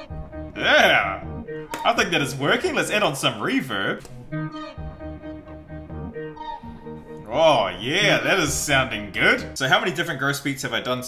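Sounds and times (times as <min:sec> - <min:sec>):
low bass: 0:00.0 - 0:03.4.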